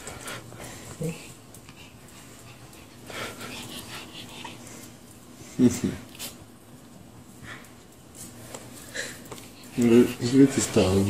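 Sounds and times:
dog's rasping breathing: 0:00.0 - 0:05.1, 0:08.8 - 0:11.0.

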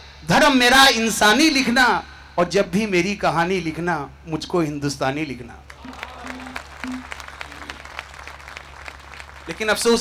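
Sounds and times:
audience applauding: 0:05.7 - 0:10.0.

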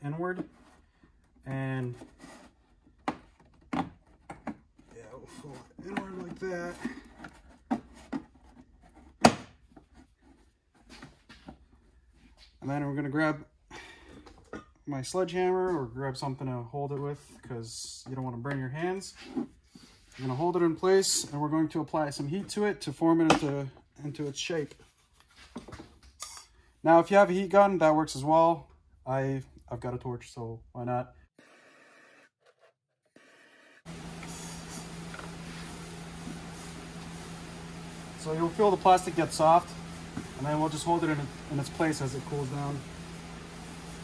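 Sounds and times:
man talking: 0:04.9 - 0:07.1, 0:38.2 - 0:39.8, 0:40.4 - 0:42.9.

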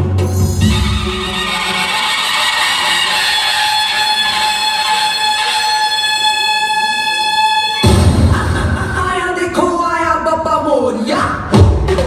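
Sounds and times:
bass-heavy dance beat: 0:00.0 - 0:12.0.

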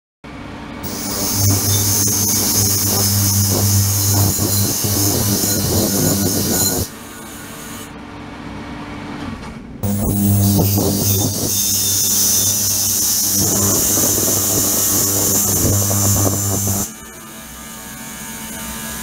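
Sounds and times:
ultrasonic cleaner buzzing hum: 0:00.8 - 0:07.0, 0:09.8 - 0:17.6.

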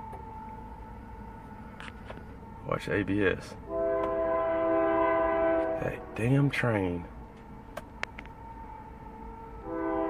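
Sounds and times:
train horn blast: 0:03.6 - 0:06.4, 0:09.6 - 0:10.0.

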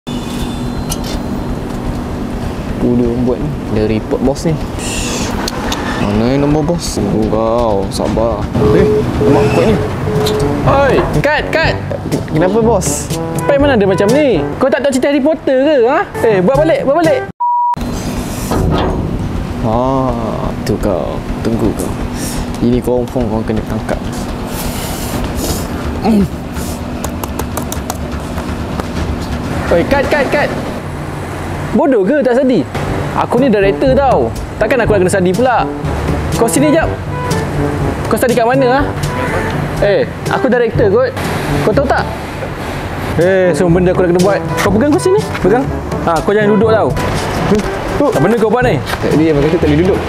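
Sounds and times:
constant low hum: 0:00.2 - 0:14.7, 0:17.8 - 0:50.0
low hum: 0:04.5 - 0:14.6, 0:17.8 - 0:24.8
steady background rumble: 0:17.8 - 0:50.0.

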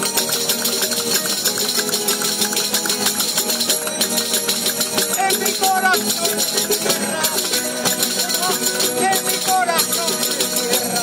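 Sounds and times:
frame drums with jingles: 0:00.0 - 0:11.0
lute: 0:00.0 - 0:11.0
strummed guitars: 0:00.0 - 0:11.0.

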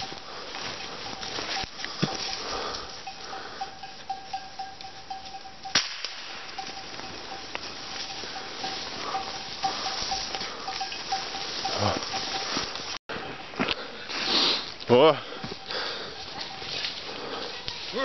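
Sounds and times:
footsteps rustling through undergrowth: 0:00.0 - 0:05.4, 0:06.0 - 0:18.0
small bell ringing: 0:00.0 - 0:13.0.

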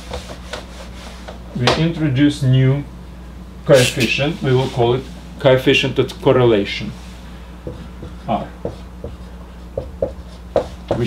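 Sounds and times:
marker writing on whiteboard: 0:07.6 - 0:11.0.

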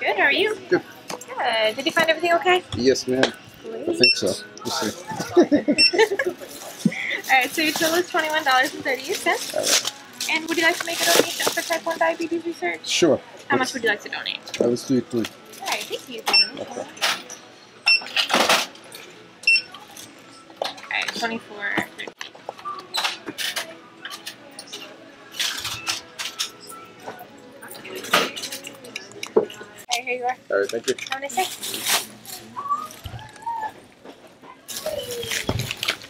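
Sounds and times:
electronic checkout beeps: 0:04.0 - 0:04.4, 0:05.8 - 0:06.0, 0:16.2 - 0:16.7, 0:19.4 - 0:19.8.

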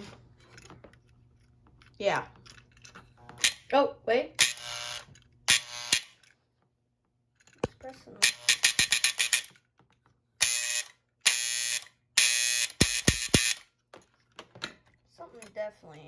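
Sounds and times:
electric buzzing: 0:04.4 - 0:06.1.

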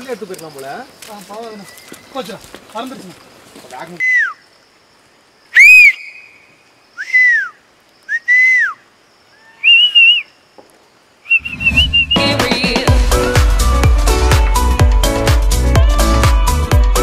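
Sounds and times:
whistled calls gliding in pitch: 0:03.9 - 0:04.6, 0:05.4 - 0:10.4, 0:11.2 - 0:12.8
music with steady beat: 0:12.2 - 0:17.0.

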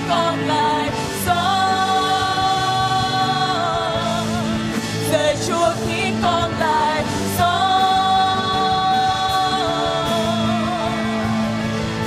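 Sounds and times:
band accompaniment: 0:00.0 - 0:12.0
singers performing worship song: 0:00.0 - 0:12.0.

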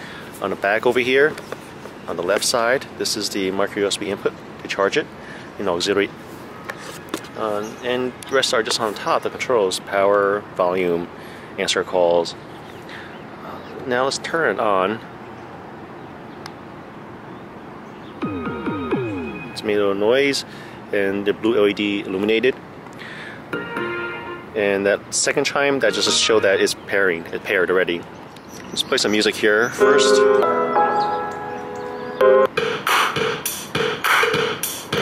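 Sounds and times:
steady low background noise: 0:00.0 - 0:35.0
music with steady drum beat: 0:32.6 - 0:35.0.

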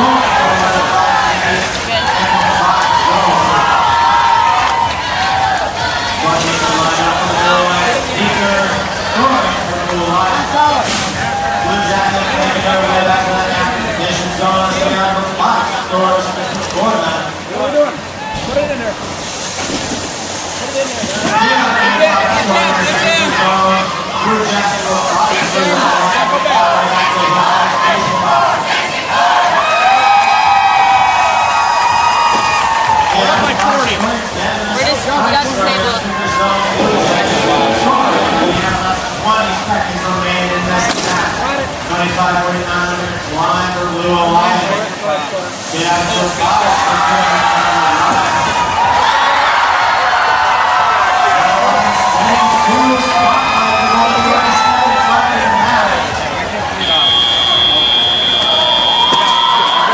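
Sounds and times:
crowd cheering and yelling: 0:00.0 - 0:18.8, 0:20.6 - 0:40.7, 0:45.8 - 0:59.9.

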